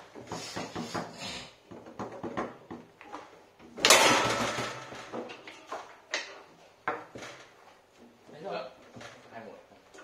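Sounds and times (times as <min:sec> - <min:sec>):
foosball shot crack: 0:03.7 - 0:05.5.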